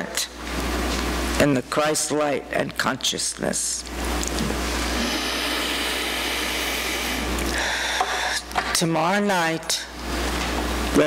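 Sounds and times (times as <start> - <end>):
speech: 1.4 - 3.8, 8.8 - 9.9.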